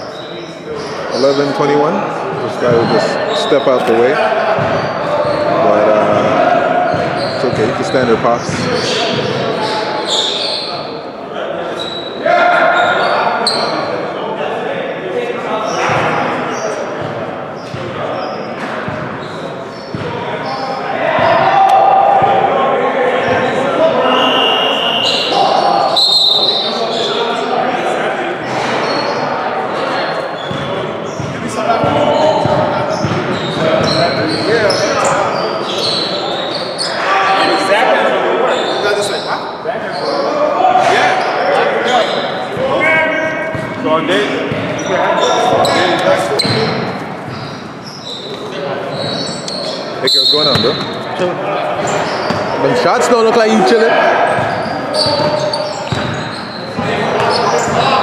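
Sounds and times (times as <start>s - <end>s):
indistinct voices echoing: 0.0s - 58.0s
basketballs bouncing on hardwood: 8.4s - 9.4s, 30.5s - 34.3s, 54.4s - 57.8s.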